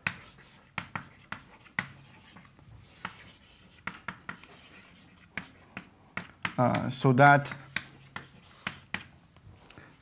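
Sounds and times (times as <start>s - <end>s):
chalk scratching: 0.0s - 9.1s
chalk tapping on blackboard: 0.0s - 9.1s.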